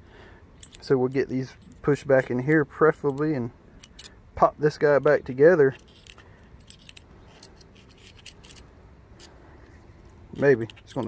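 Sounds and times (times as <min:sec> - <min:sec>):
light metal clicks and ticks: 0:00.6 - 0:09.4, 0:10.0 - 0:11.0.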